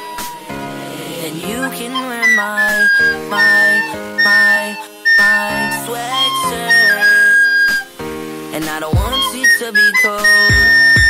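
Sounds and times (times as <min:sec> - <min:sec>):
pop song with sung vocals: 0:00.0 - 0:11.0
recorder playing high notes: 0:01.7 - 0:08.0, 0:09.0 - 0:11.0.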